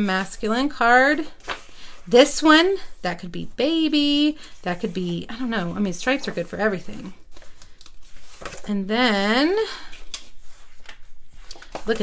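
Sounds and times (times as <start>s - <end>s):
paper sheets rustling: 1.0s - 2.9s, 4.0s - 8.9s, 9.9s - 12.0s.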